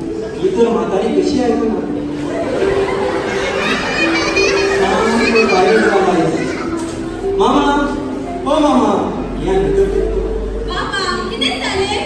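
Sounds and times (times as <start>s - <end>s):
voices talking in a large hall: 0.0s - 12.0s.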